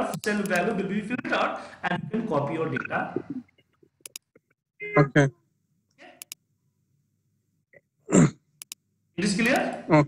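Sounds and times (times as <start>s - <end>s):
computer mouse clicks: 0.1s - 0.7s, 4.0s - 4.4s, 6.2s - 6.4s, 8.6s - 8.8s, 9.4s - 9.8s.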